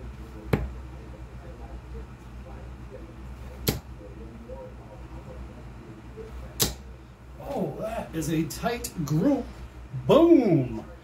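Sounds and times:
darts thudding into dartboard: 0.5 - 0.8, 3.5 - 3.9, 6.6 - 6.9.

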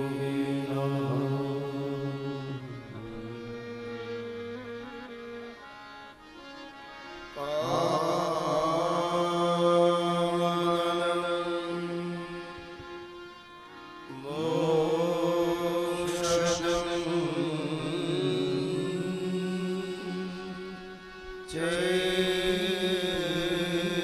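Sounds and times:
man chanting: 0.0 - 4.4, 7.4 - 13.0, 14.1 - 24.0
steady drone: 15.6 - 19.9.

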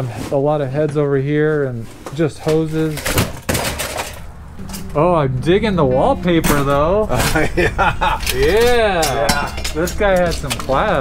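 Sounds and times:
car parts knocking and clattering: 2.0 - 4.3.

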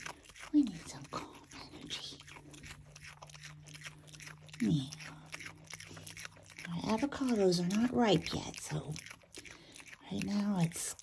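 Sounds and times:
animal chewing with crunching clicks: 0.0 - 11.0
low steady hum: 0.0 - 11.0.

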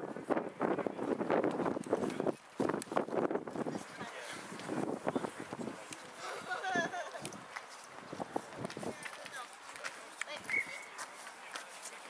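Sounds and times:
faint distant voices: 3.6 - 12.0.

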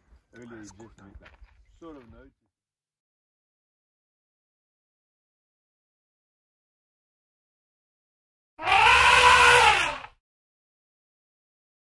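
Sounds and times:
elephant trumpeting: 8.6 - 10.1.

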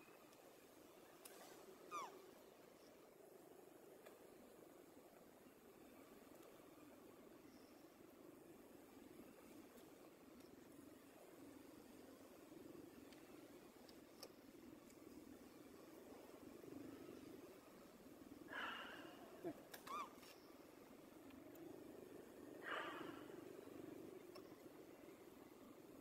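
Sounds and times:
steady low hum: 20.3 - 26.0.

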